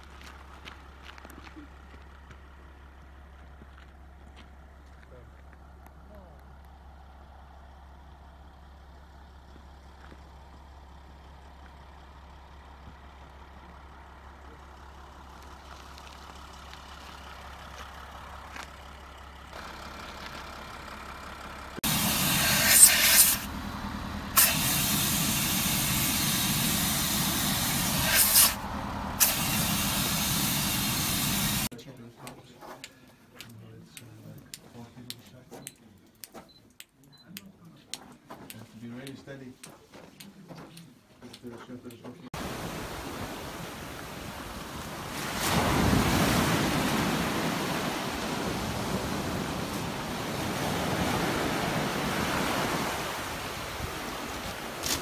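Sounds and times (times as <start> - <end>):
vehicle engine drone: 0.0 - 31.8
loud steady hiss: 21.8 - 23.5, 24.3 - 28.6, 29.2 - 31.7.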